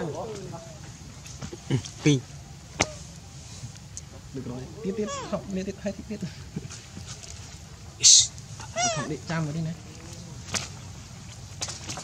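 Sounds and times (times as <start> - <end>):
macaque squealing call: 4.8 - 5.4, 8.0 - 9.3.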